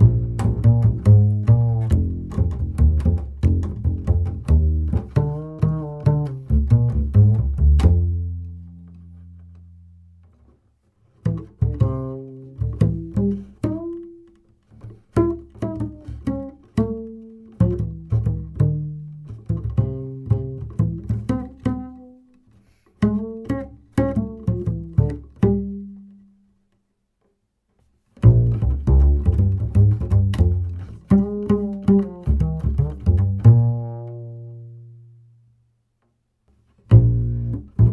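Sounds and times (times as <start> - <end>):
double bass plucked pizzicato: 0.0 - 26.5, 28.1 - 35.7, 36.6 - 37.9.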